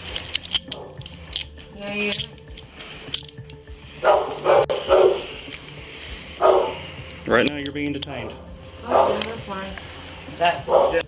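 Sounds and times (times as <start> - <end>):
handcuffs ratcheting clicks: 0.0 - 5.8, 7.0 - 9.4
dog barking: 4.0 - 5.3, 6.4 - 6.8, 8.8 - 9.4, 10.7 - 11.0.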